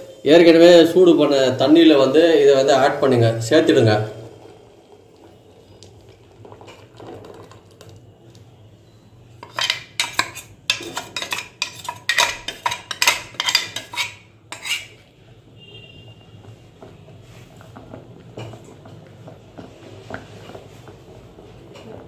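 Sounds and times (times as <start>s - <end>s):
steel utensils clinking against pot: 9.4s - 15.0s.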